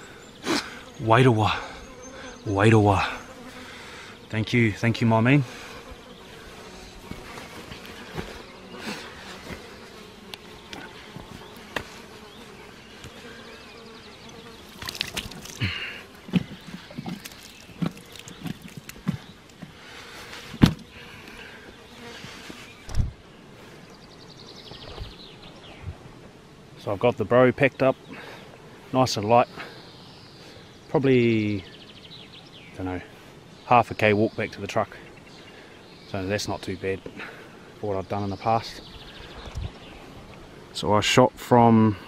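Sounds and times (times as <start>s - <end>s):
insects buzzing: 0.0s - 42.0s
rustles: 5.5s - 27.2s
thumps of carcass handled: 16.3s - 19.7s, 20.5s - 20.9s.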